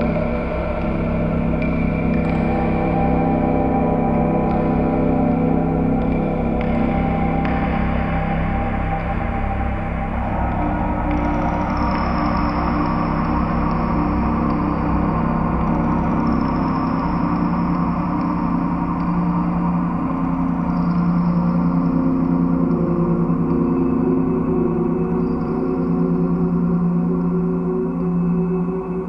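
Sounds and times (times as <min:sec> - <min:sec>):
bowed metal drone: 0:00.0 - 0:29.0.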